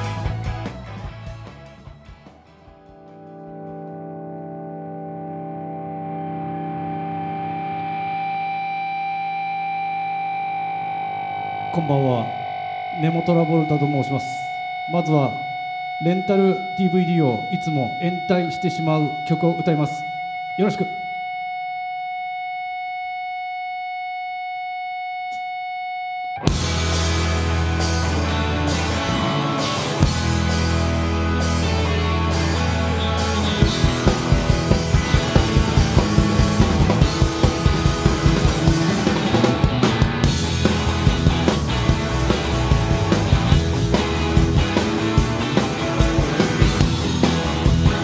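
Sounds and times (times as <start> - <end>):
rock band playing: 0.0 - 14.9, 26.3 - 48.0
distorted electric guitar note: 0.0 - 48.0.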